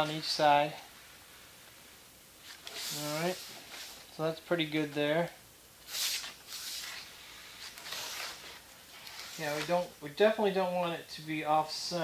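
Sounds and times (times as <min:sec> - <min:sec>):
hand brushing over wood veneer: 0:02.4 - 0:04.1, 0:05.9 - 0:09.9.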